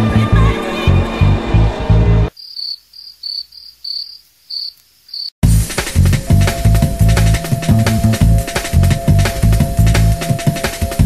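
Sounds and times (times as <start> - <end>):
crickets chirping: 2.3 - 5.4.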